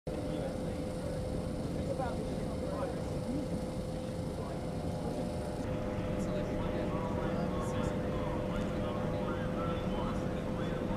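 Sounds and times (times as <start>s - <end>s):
constant hum: 0.1s - 10.9s
murmur of distant voices: 0.1s - 10.9s.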